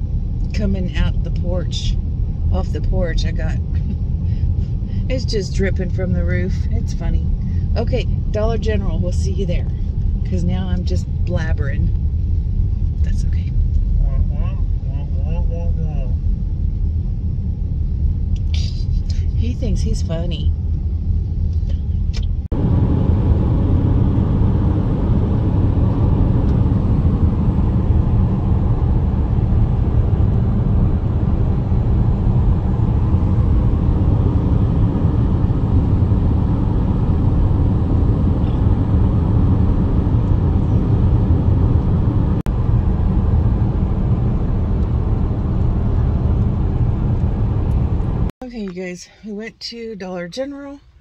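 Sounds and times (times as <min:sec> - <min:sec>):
car road rumble: 0:00.0 - 0:51.0.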